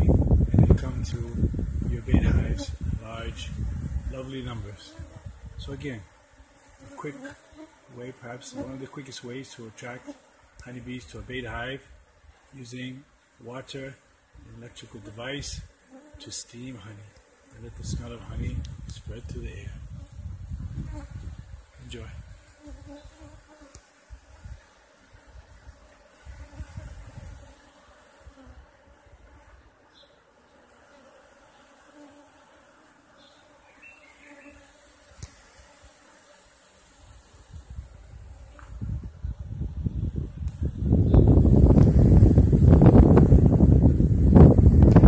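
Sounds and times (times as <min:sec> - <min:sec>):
low rumbling on microphone: 0:00.0 - 0:05.8, 0:17.6 - 0:22.4, 0:37.6 - 0:45.0
honeybees buzzing: 0:00.0 - 0:45.0.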